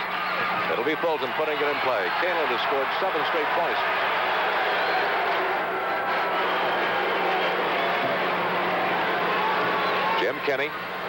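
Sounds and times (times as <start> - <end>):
crowd of spectators talking: 0.0 - 11.0.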